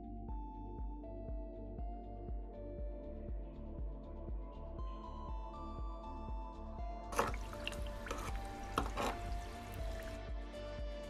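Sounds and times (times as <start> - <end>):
background music with beat: 0.0 - 11.0
water pouring and splashing: 7.1 - 10.2.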